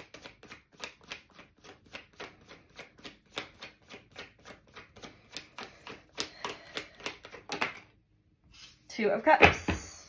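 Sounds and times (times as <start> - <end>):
cards being shuffled: 0.0 - 8.8.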